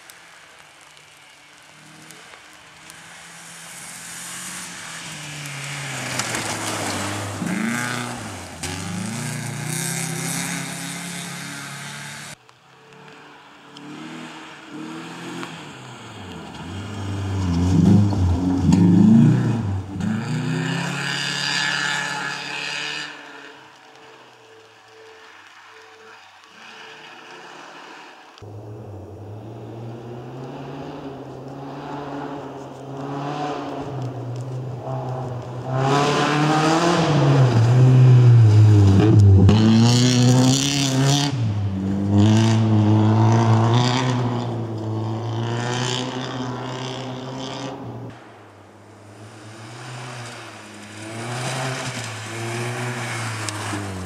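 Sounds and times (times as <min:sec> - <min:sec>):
rally car engine revving past: 0:03.0 - 0:13.1, 0:13.8 - 0:23.5, 0:28.6 - 0:48.1, 0:49.0 - 0:54.0.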